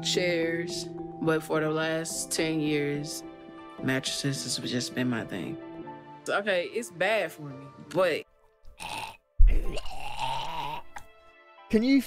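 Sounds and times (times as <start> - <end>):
man groaning: 8.9 - 11.0.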